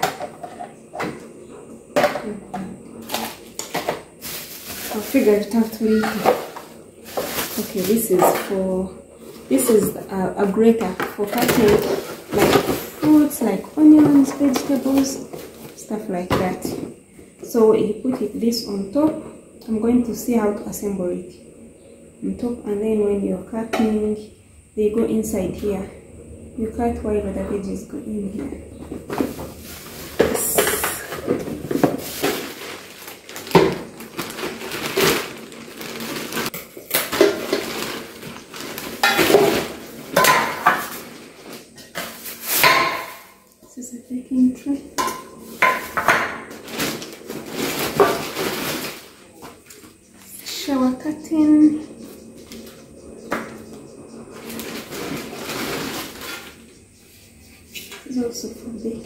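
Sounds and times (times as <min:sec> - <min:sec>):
packaging rustling: 0:03.0 - 0:08.2, 0:29.6 - 0:42.7, 0:45.6 - 0:49.6, 0:54.5 - 0:56.6
plastic pieces knocking: 0:30.2 - 0:41.1
metal bakeware clattering: 0:36.9 - 0:41.0, 0:45.0 - 0:46.8.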